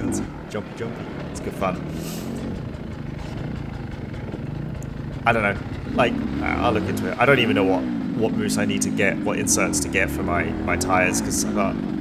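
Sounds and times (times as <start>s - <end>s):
dirt bike engine running: 0.0s - 12.0s.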